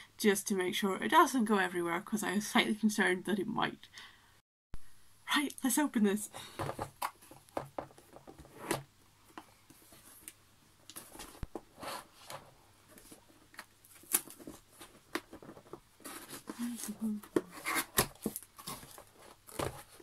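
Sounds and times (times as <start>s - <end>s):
cardboard box handled and opened: 11.0s - 20.0s.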